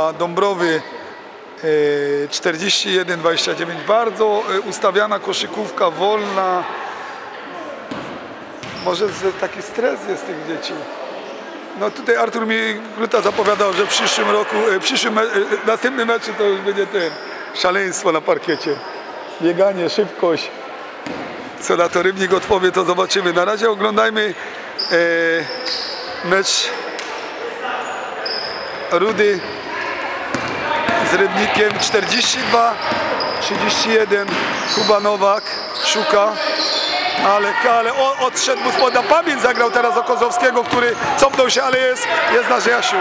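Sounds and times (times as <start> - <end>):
players' voices: 0.0 - 43.0
sneaker squeaks: 7.9 - 9.8, 16.2 - 19.5, 21.0 - 22.5, 24.7 - 43.0
basketball bouncing on wooden floor: 30.3 - 31.1.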